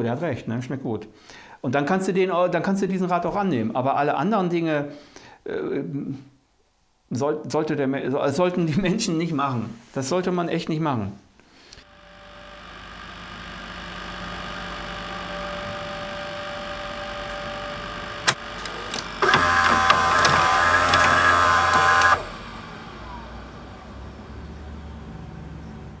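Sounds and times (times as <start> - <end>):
electronic hum: 11.8 - 24.6
buzzing static burst: 11.9 - 23.7
sharp click: 18.2 - 22.3.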